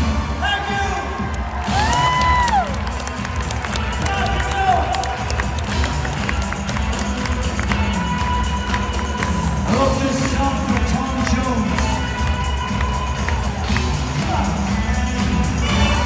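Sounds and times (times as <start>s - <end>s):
crowd cheering and shouting: 0.0s - 16.0s
live band music: 0.0s - 16.0s.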